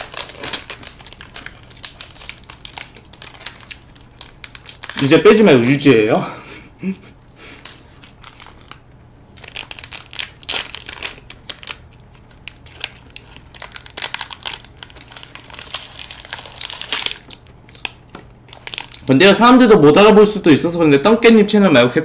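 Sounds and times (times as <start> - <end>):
plastic wrappers crinkling: 0.0 - 5.9, 7.5 - 19.4.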